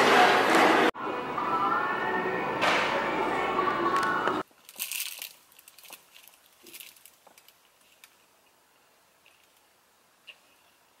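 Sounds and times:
snack wrapper crinkling: 4.4 - 8.2.

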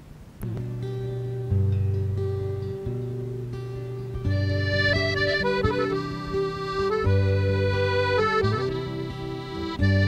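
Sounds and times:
acoustic guitar: 0.0 - 10.0
accordion playing chords: 4.2 - 10.0.

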